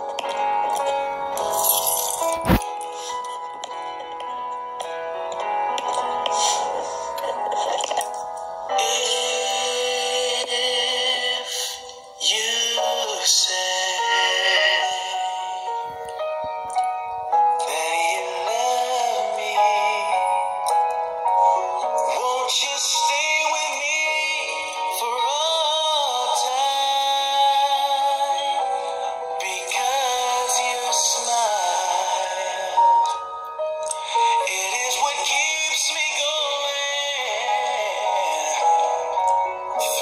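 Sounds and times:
man singing: 8.7s - 15.7s, 17.5s - 20.9s, 21.5s - 33.2s, 33.8s - 40.0s.

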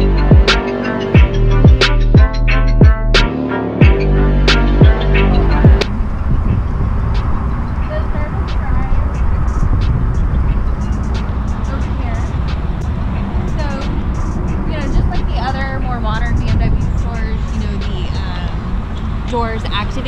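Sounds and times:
faint voices talking: 3.8s - 20.0s
wind buffeting microphone: 3.8s - 20.0s.

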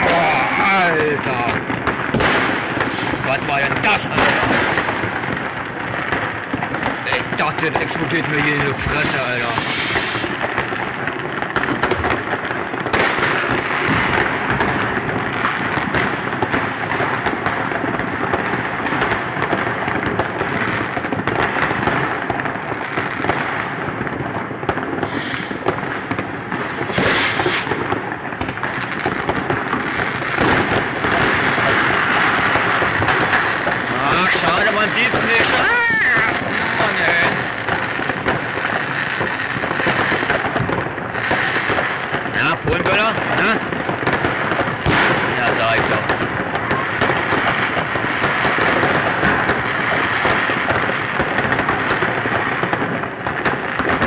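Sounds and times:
fireworks crackling and banging: 0.0s - 54.0s
loud firework bangs: 0.0s - 54.0s.

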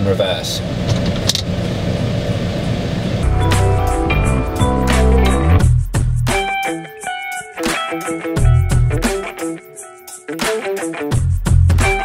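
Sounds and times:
music with long held chords: 3.2s - 10.8s.

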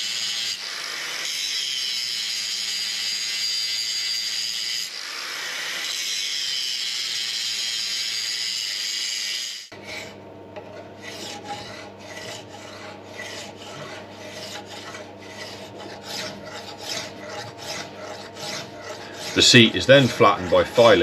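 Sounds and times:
angle grinder grinding steel: 0.0s - 21.0s
hand file rasping on metal: 0.0s - 21.0s.

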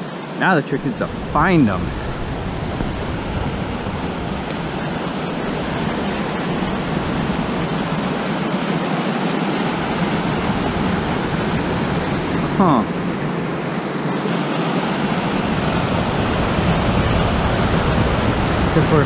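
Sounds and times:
creek rushing over boulders: 0.0s - 13.4s, 14.0s - 19.0s.

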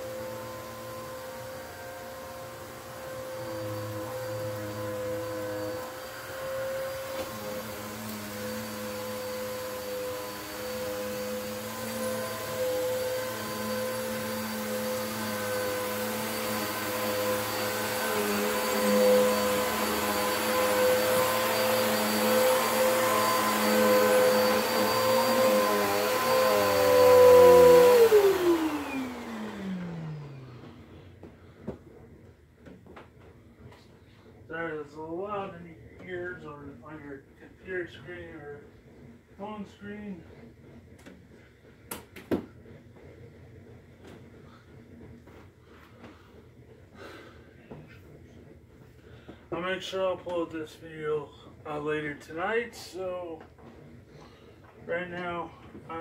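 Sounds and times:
vacuum motor winding down: 0.0s - 31.2s
vacuum cleaner running on carpet: 0.0s - 32.0s, 32.6s - 56.0s.

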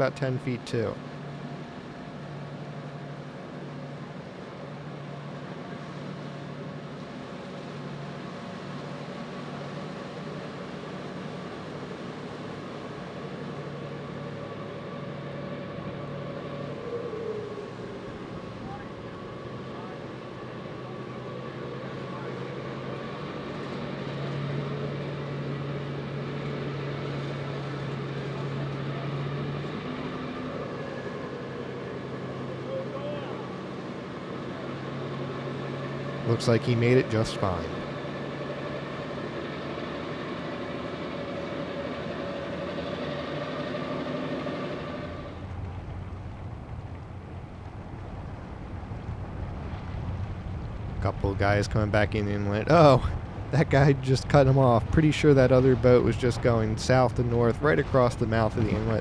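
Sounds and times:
boat engines droning: 0.0s - 59.0s
outdoor background hiss: 0.0s - 59.0s.

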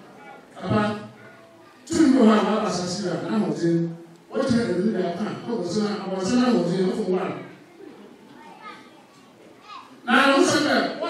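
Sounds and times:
faint background chatter: 0.0s - 4.5s, 5.2s - 11.0s.

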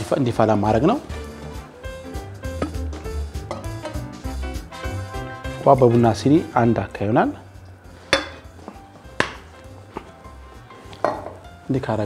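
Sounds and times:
kitchenware clink: 11.0s - 11.4s.

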